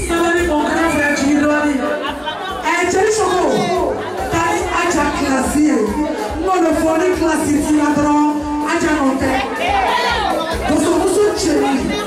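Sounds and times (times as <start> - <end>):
women chattering: 0.6 - 7.1, 9.1 - 12.0.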